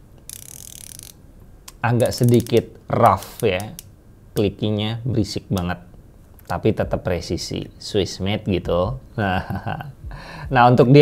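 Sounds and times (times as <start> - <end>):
watch bezel ratcheting clicks: 0.3 - 1.2, 2.0 - 2.7.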